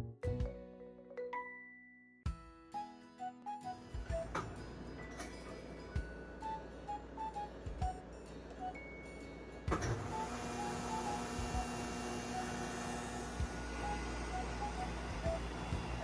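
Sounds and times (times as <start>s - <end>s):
machine motor whirring: 9.8s - 16.0s.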